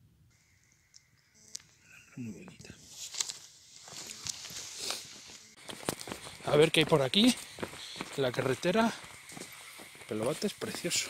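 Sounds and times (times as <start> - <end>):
thin high hum: 0.3 - 10.2.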